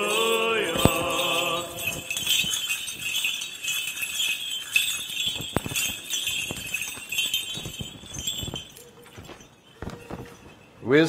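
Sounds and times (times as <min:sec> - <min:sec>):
chains clinking: 0:00.0 - 0:10.8
censer bells jingling: 0:00.0 - 0:11.0.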